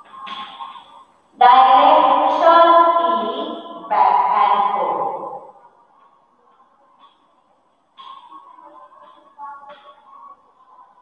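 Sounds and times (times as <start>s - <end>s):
woman's drawn-out voice: 1.4s - 5.4s.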